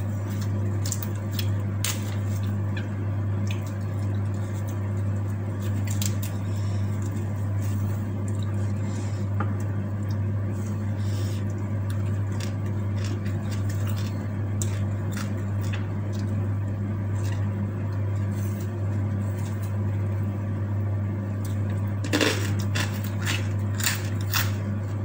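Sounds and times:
crunchy crackle: 0.0s - 8.8s, 11.4s - 20.2s, 21.3s - 25.0s
low electrical hum: 0.0s - 25.0s.

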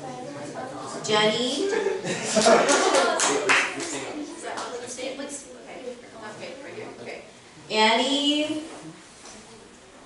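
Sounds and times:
children clapping: 2.3s - 4.8s.

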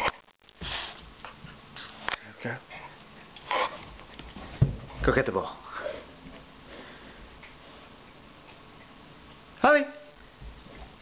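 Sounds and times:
dog sniffing and breathing hard: 0.6s - 2.1s.

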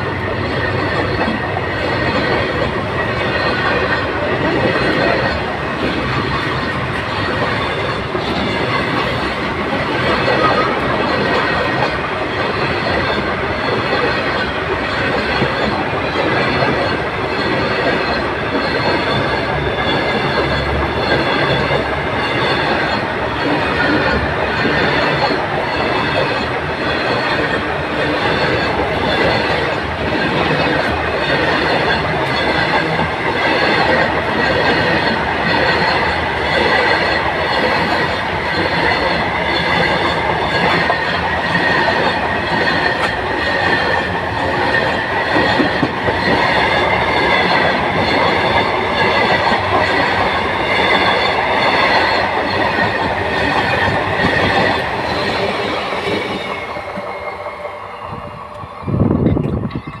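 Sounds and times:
train wheels rumbling on rail: 0.0s - 60.0s.

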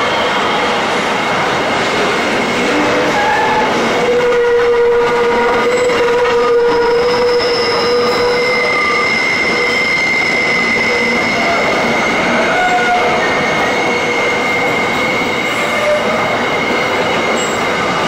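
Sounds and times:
freight train wheels on rails: 0.0s - 18.0s
high wheel squeals: 2.6s - 18.0s.

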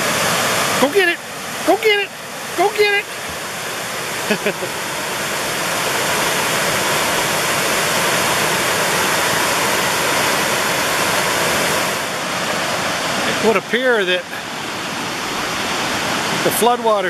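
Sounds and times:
waterfall rushing: 0.0s - 17.0s.

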